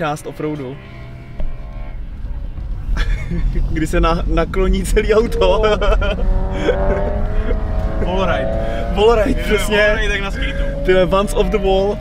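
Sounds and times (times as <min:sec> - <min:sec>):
suv engine running from inside cabin: 0:00.8 - 0:12.0.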